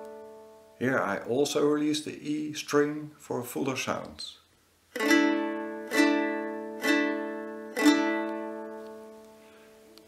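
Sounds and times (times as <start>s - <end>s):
lyre strummed: 0.0s - 1.8s, 4.9s - 10.0s.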